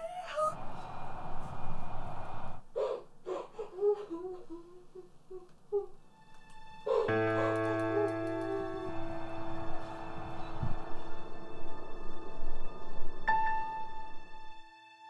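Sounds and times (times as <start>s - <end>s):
faint whimpering cries: 0.0s - 0.6s, 2.8s - 6.0s
sustained music chord with drone: 6.2s - 15.0s.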